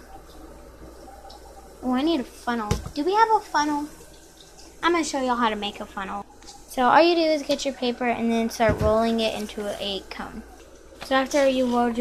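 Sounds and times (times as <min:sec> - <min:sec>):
running tap water: 0:00.0 - 0:12.0.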